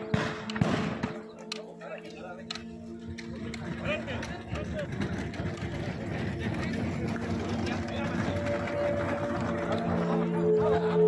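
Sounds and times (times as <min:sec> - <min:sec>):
faint footstep clicks: 0:00.4 - 0:03.7
indistinct voices: 0:01.2 - 0:11.0.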